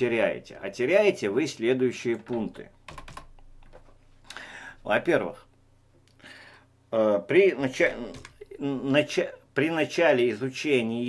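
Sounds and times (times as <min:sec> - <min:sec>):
man speaking: 0:00.0 - 0:02.8, 0:04.8 - 0:05.5, 0:06.9 - 0:11.0
keyboard keystrokes: 0:02.2 - 0:03.8, 0:08.0 - 0:08.4.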